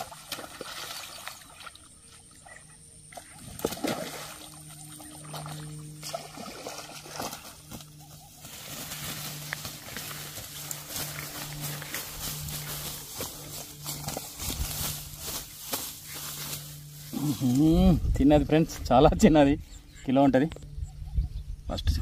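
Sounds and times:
low hum: 0:00.0 - 0:22.0
tall grass rustling: 0:03.2 - 0:18.9
fish flapping in grass: 0:03.4 - 0:17.7.

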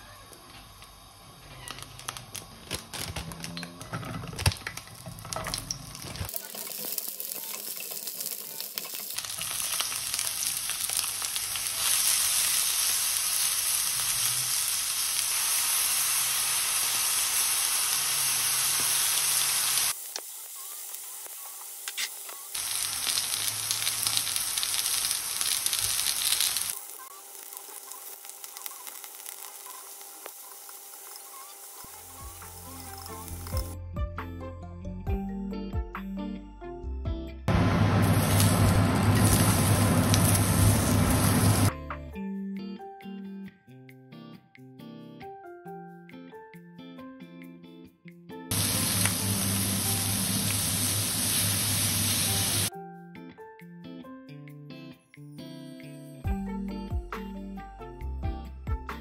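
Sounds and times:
vegetables sizzling in hot oil: 0:04.6 - 0:33.8, 0:37.5 - 0:41.7, 0:48.5 - 0:52.7.

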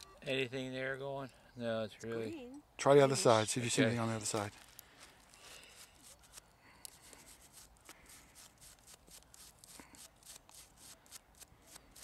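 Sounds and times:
toothbrush scratching metal: 0:05.6 - 0:12.0.

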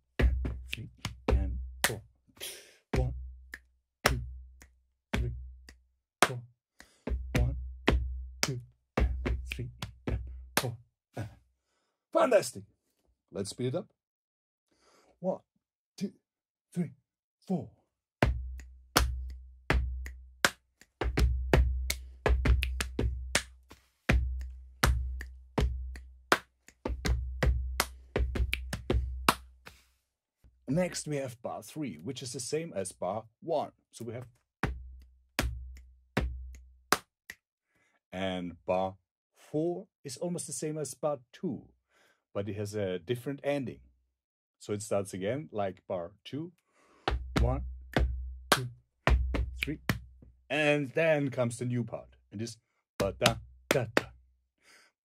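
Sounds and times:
hand claps: 0:00.2 - 0:02.0, 0:03.0 - 0:10.8, 0:18.2 - 0:29.8, 0:34.2 - 0:37.4, 0:47.1 - 0:50.1, 0:53.0 - 0:54.1
finger snap: 0:00.7 - 0:01.2, 0:01.8 - 0:07.5, 0:08.4 - 0:10.0, 0:10.6 - 0:10.8, 0:18.5 - 0:21.3, 0:21.9 - 0:27.2, 0:27.8 - 0:29.8, 0:35.0 - 0:37.4, 0:47.1 - 0:50.0
finger snaps: 0:03.5 - 0:07.0
sharp slap: 0:48.5 - 0:48.7.

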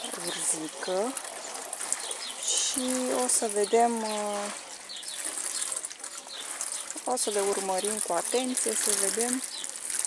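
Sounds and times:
water showering from watering can: 0:00.0 - 0:10.0.

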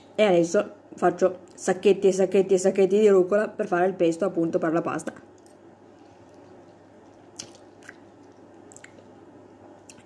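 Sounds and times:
person chewing food: 0:05.3 - 0:10.0
small mouth clicks: 0:07.3 - 0:09.1.

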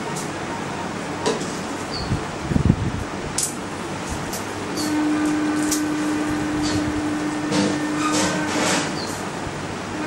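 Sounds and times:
fan-like noise: 0:00.0 - 0:10.0.

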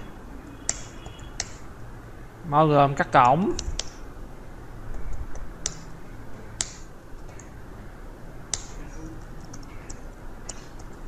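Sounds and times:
low steady hum: 0:00.0 - 0:11.0
keyboard typing: 0:00.6 - 0:01.6, 0:03.2 - 0:04.0, 0:08.5 - 0:11.0.

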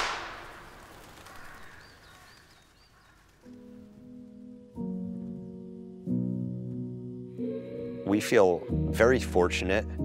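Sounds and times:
gunshot echo: 0:00.0 - 0:00.9.

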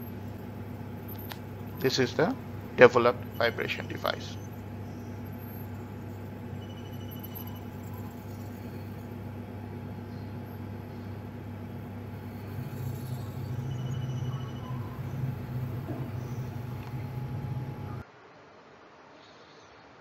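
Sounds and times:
higher machine hum: 0:00.0 - 0:18.0
low machine hum: 0:00.0 - 0:18.0.

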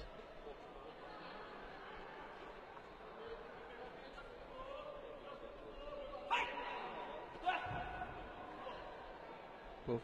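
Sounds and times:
murmur of hall crowd: 0:00.0 - 0:10.0.

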